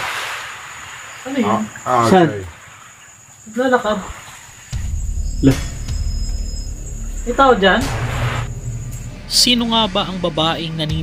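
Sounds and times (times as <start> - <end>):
high insect drone: 0.0 - 11.0
low dark background music: 4.7 - 11.0.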